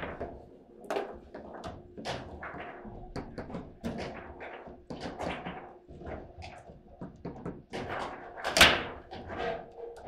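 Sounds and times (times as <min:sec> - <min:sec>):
table football clacks and rattles: 0:00.0 - 0:09.6.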